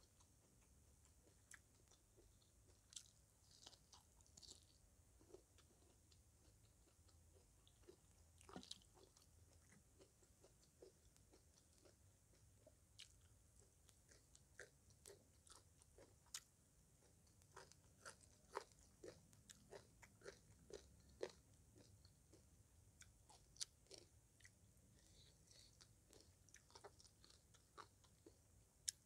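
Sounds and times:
person chewing with mouth clicks: 0:00.1 - 0:29.0.

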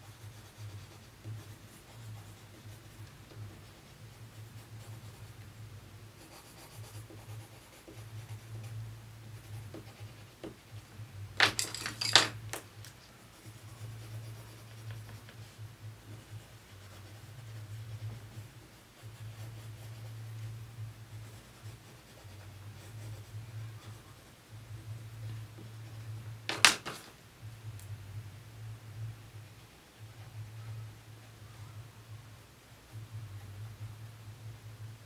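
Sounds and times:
pencil scratching on paper: 0:00.0 - 0:05.4, 0:06.2 - 0:10.9, 0:13.3 - 0:24.3
pencils clicking on table: 0:11.4 - 0:13.0, 0:26.5 - 0:27.1.

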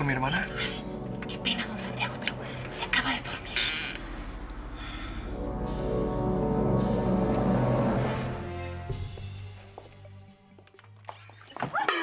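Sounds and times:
low sombre music drone: 0:00.0 - 0:09.8.

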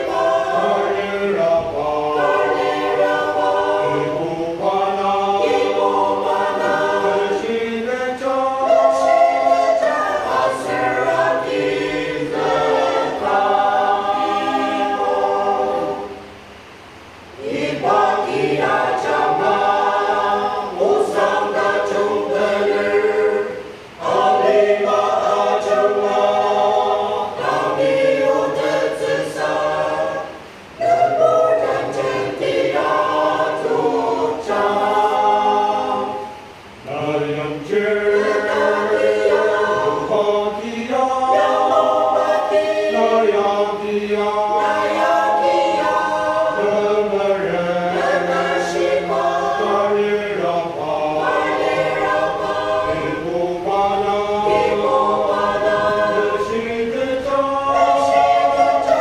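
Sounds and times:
mixed choir singing a hymn: 0:00.0 - 0:59.0.

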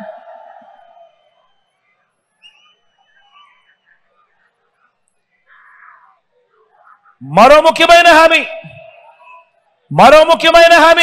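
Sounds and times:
distant crowd voices: 0:00.0 - 0:07.2
man shouting over loudspeakers: 0:07.3 - 0:09.1, 0:09.9 - 0:11.0.

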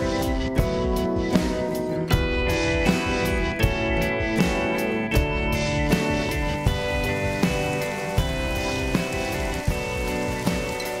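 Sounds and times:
background music sustained notes: 0:00.0 - 0:11.0
steady rain: 0:06.1 - 0:11.0.

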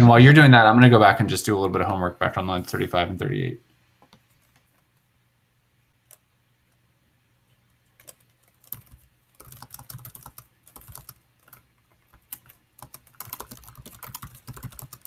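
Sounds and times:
typing on computer keyboard: 0:08.0 - 0:15.0.

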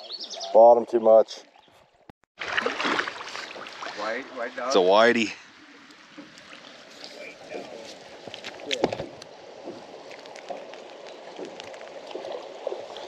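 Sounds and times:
river water lapping around boat: 0:01.2 - 0:13.0.

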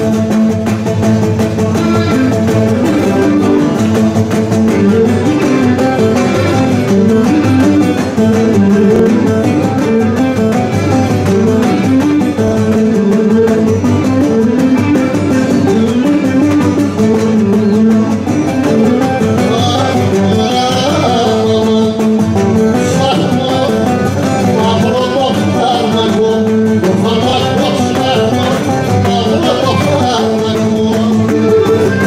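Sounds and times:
folk dance music on plucked strings: 0:00.0 - 0:32.0.

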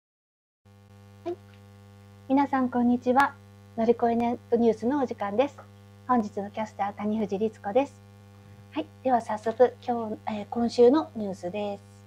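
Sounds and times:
electrical mains hum: 0:00.7 - 0:12.0
woman speaking: 0:02.3 - 0:08.0, 0:08.7 - 0:12.0.

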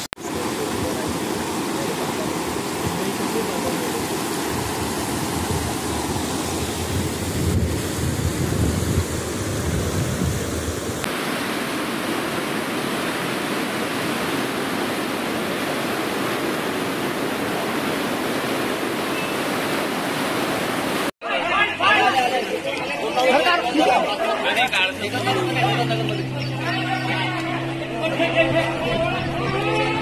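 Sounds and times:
rushing river water: 0:00.0 - 0:30.0
wind rumble on microphone: 0:04.3 - 0:11.1.

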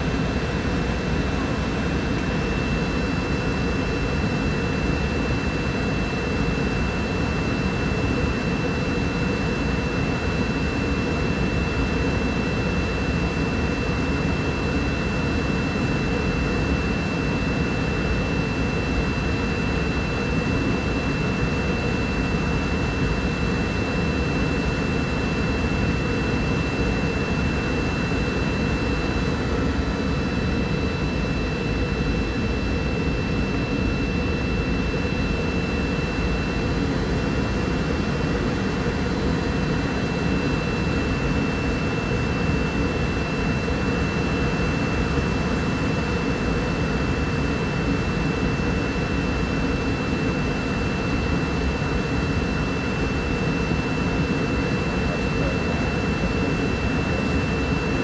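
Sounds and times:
airplane cabin roar: 0:55.0 - 0:56.6.

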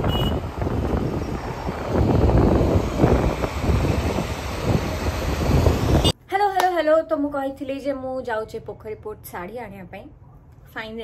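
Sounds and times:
road and engine noise: 0:00.0 - 0:06.2
wind buffeting microphone: 0:00.0 - 0:06.2.

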